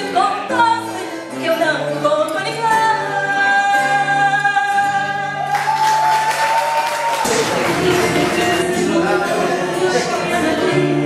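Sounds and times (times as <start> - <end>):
woman singing: 0.0 - 5.5, 7.3 - 11.0
guitar accompaniment: 0.0 - 11.0.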